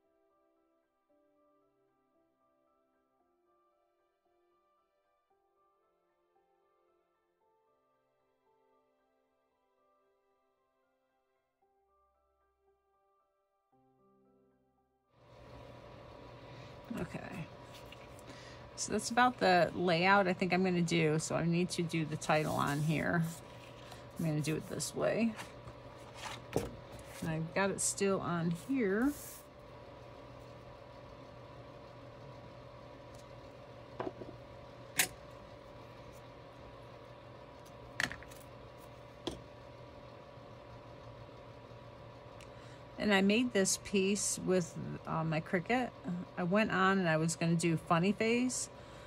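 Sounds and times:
low machine hum: 0:15.2 - 0:49.0.

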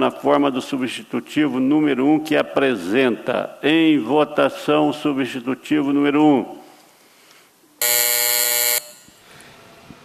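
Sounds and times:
electronic buzzer tone: 0:07.8 - 0:09.2.

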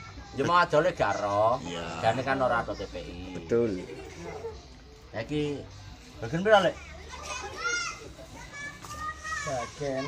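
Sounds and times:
small children calling out: 0:06.7 - 0:10.0.

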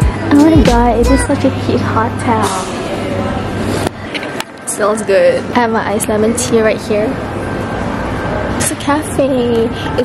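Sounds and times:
woman speaking: 0:00.3 - 0:02.7.

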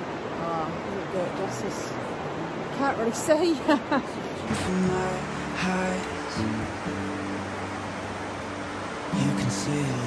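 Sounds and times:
steady rushing hiss: 0:04.2 - 0:10.0
low background music: 0:04.5 - 0:10.0.

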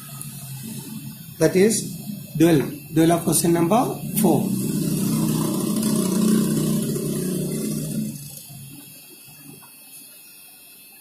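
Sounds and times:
motor humming: 0:00.0 - 0:09.6.

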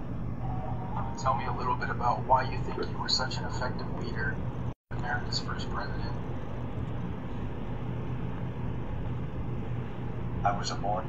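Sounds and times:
room noise hum and hiss: 0:00.0 - 0:11.0.

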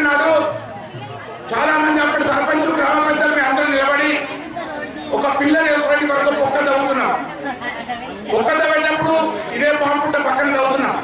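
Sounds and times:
man speaking into a microphone: 0:00.0 - 0:00.7, 0:01.4 - 0:07.4, 0:08.2 - 0:11.0.

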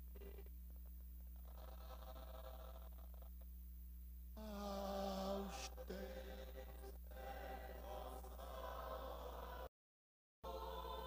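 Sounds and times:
low electrical hum: 0:00.0 - 0:09.7
man singing held note: 0:04.4 - 0:06.9.

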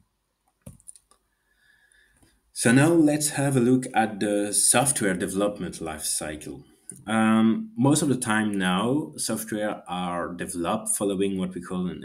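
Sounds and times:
faint mouse clicks: 0:00.4 - 0:01.3.

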